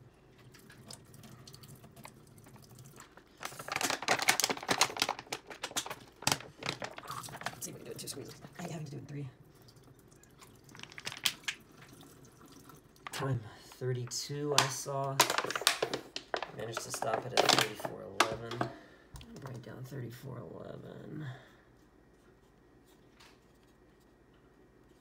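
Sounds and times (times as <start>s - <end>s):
plastic bottle crackling: 1.9s - 8.7s, 10.7s - 12.0s, 14.5s - 18.8s.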